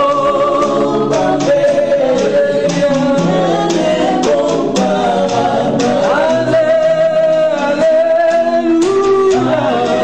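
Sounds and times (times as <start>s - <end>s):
group singing gospel song: 0.0s - 10.0s
strummed acoustic guitar: 0.0s - 10.0s.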